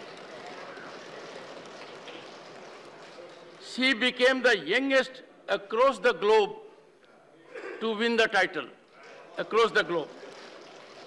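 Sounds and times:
murmur of voices: 0.0s - 4.4s, 6.7s - 11.0s.

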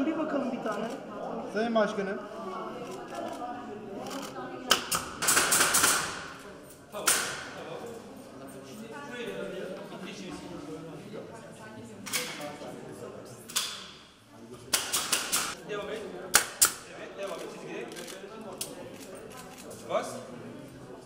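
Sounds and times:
murmuring voices: 0.0s - 13.6s
nail gun shots: 4.7s - 6.4s, 7.0s - 7.5s, 14.7s - 15.6s.

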